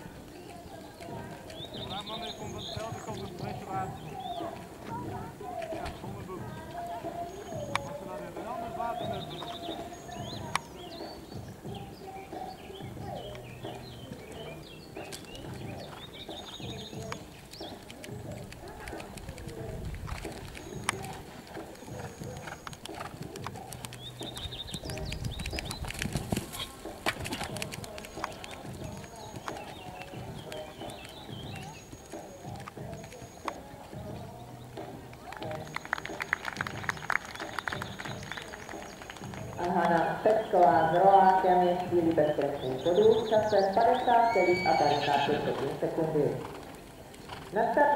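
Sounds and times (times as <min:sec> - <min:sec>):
bird calls: 0:00.0 - 0:47.9
distant voices: 0:00.0 - 0:47.9
faint background music: 0:00.0 - 0:47.9
sharp ticks: 0:15.0 - 0:33.7.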